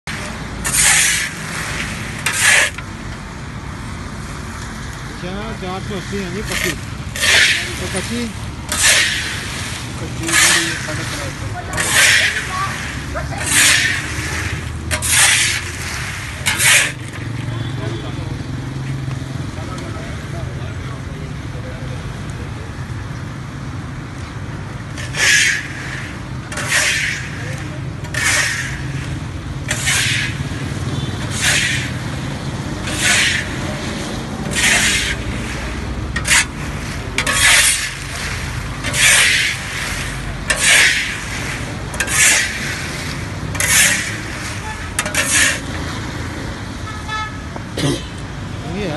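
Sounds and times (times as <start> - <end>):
scoop scraping through sand: 0.1 - 2.8, 6.4 - 17.4, 25.0 - 30.6, 31.2 - 32.1, 32.8 - 45.7.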